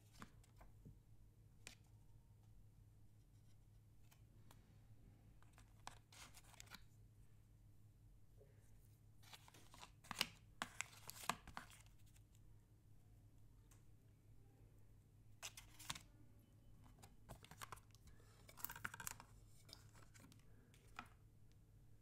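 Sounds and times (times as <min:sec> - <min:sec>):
paper packaging rustling: 0:05.4 - 0:06.9, 0:09.2 - 0:12.2, 0:15.4 - 0:16.1, 0:16.8 - 0:21.2.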